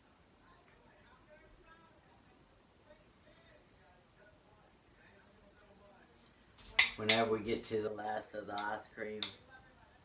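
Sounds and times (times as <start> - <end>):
spoon clinking on plate: 6.6 - 7.3.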